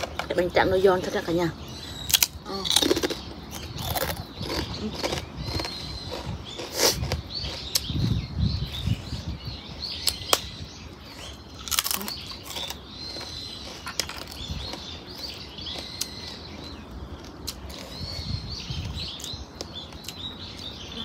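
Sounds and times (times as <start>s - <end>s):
crunching rice paper: 3.8s - 7.8s.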